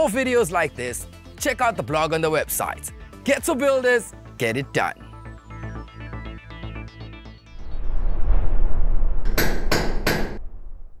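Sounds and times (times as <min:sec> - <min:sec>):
sharp knocks: 0:09.3 - 0:10.4.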